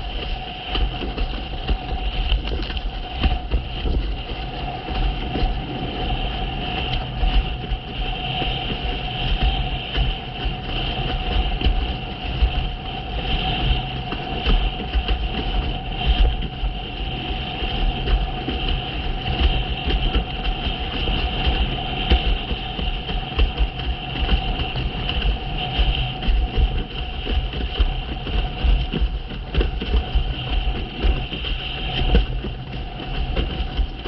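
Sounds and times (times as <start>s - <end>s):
water rushing and slapping: 0.0s - 34.0s
wind buffeting microphone: 0.0s - 34.0s.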